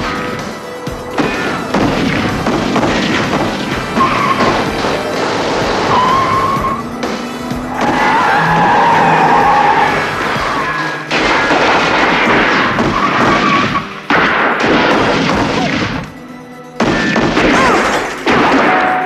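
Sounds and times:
car engines running hard: 0.0 - 14.2
action score music: 0.0 - 19.0
tyres squealing: 3.8 - 11.5, 12.2 - 14.1.

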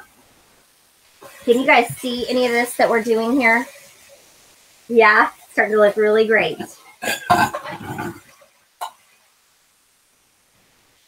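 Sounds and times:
person's throaty vocal sound: 7.0 - 8.3.

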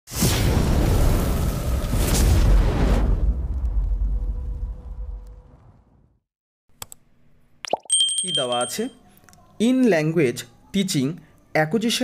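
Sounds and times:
high bell ding: 7.8 - 9.0.

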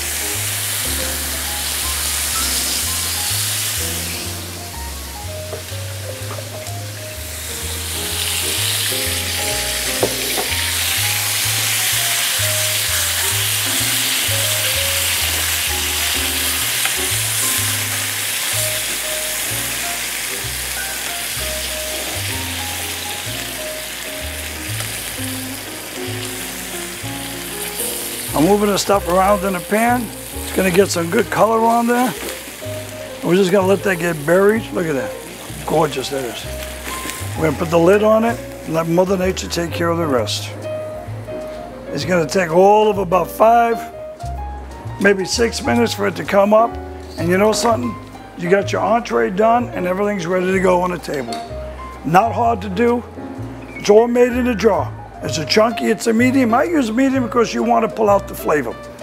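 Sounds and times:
meat sizzling in a frying pan: 0.0 - 39.5
background music with bass line: 0.0 - 59.0
tongs working food in pan: 7.4 - 37.4.

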